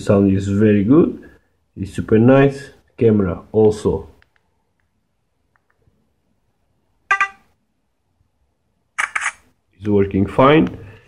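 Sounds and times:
phone camera tone: 0:07.1 - 0:07.5
camera shutter click: 0:09.0 - 0:09.4.

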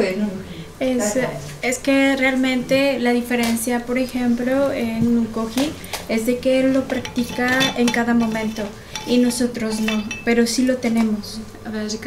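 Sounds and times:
woman talking: 0:00.0 - 0:12.0
tableware clinking: 0:06.7 - 0:10.6.

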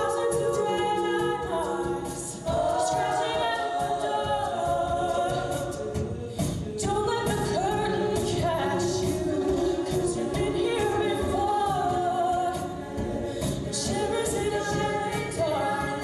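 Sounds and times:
female a cappella group singing: 0:00.0 - 0:16.0.

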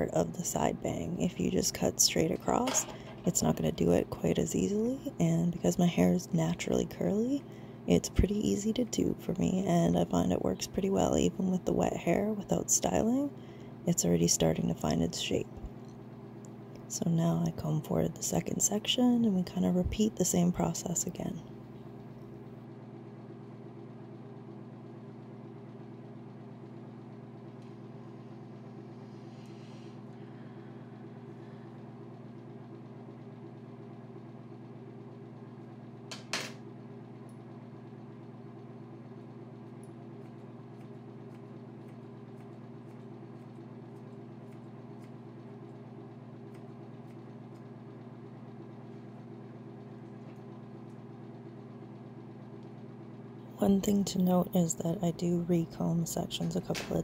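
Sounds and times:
steady low hum: 0:00.0 - 0:57.0.

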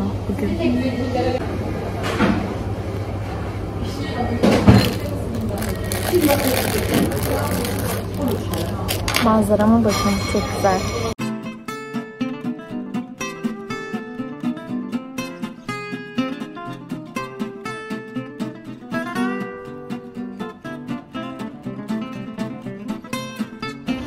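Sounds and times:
acoustic guitar picking: 0:08.1 - 0:24.0.

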